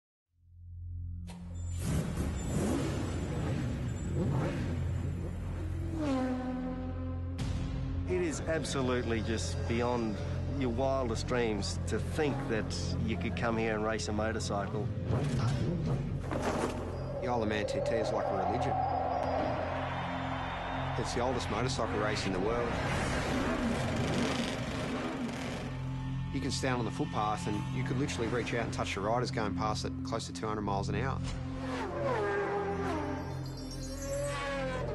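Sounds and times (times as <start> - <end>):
background music: 4.1 - 34.9
racing motorcycles passing: 17.1 - 26.0.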